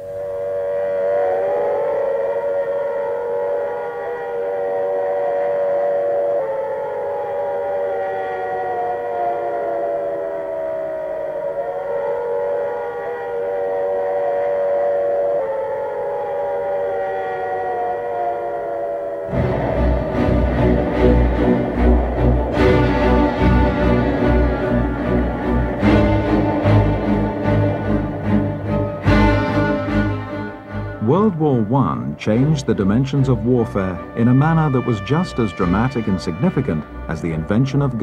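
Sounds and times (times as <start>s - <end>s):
air-raid siren wailing: 0.0s - 38.0s
steady drone: 0.0s - 38.0s.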